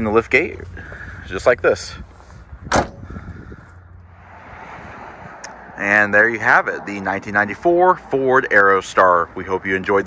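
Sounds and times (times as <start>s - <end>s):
van liftgate slamming: 2.7s - 3.2s.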